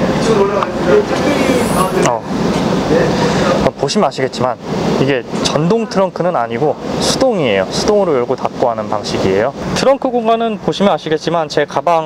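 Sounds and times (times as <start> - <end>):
voices talking: 0.0 - 3.7
steady background hum: 0.0 - 5.3.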